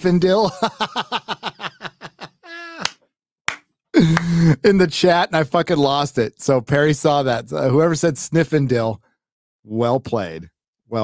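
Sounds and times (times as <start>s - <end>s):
man laughing hard: 0.4s - 2.9s, 4.0s - 4.7s.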